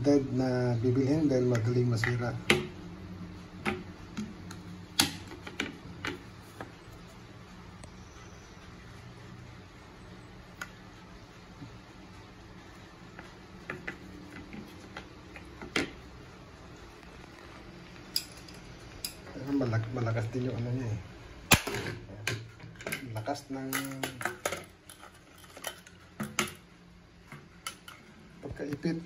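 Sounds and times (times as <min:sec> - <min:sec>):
man talking: 0:00.0 - 0:02.5, 0:19.3 - 0:21.1, 0:22.9 - 0:24.3, 0:28.4 - 0:29.0.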